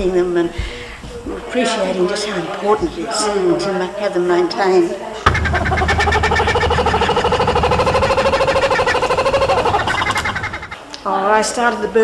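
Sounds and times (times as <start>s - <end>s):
kookaburra laughing call: 5.3s - 10.8s.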